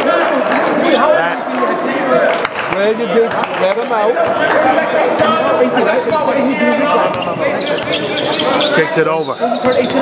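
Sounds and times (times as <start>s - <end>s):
overlapping voices and chatter: 0.0s - 10.0s.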